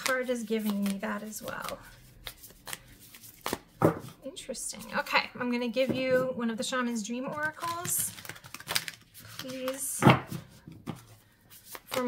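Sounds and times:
cards clicking as handled: 7.6s - 9.8s.

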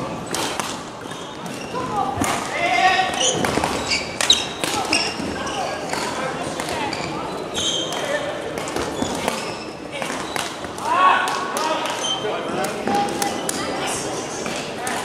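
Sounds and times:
shoes squeaking on floor: 0.2s - 2.1s, 3.1s - 10.6s, 11.9s - 13.8s
rackets hitting shuttlecock: 0.2s - 13.6s.

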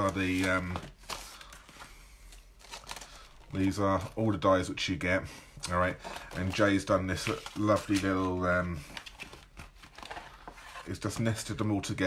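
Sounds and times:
packaging rustling: 0.0s - 4.2s, 5.8s - 11.5s.

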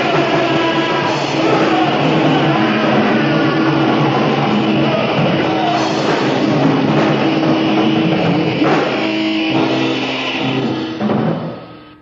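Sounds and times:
distorted electric guitar chords: 0.0s - 12.0s.

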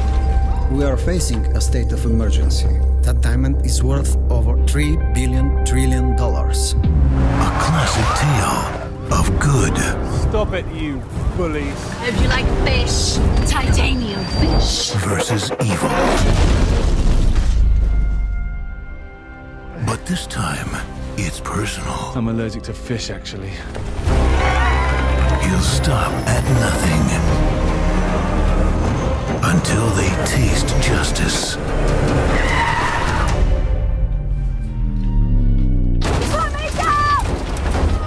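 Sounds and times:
music: 0.0s - 38.0s
car tyres skidding and squealing: 7.0s - 9.0s, 31.7s - 33.6s.

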